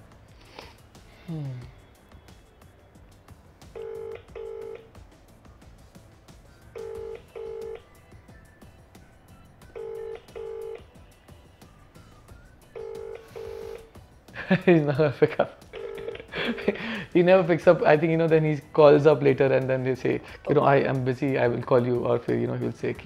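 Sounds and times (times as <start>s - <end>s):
phone ringback tone: 3.7s - 4.9s, 6.6s - 8.0s, 9.6s - 11.0s, 12.6s - 13.9s, 15.8s - 16.3s.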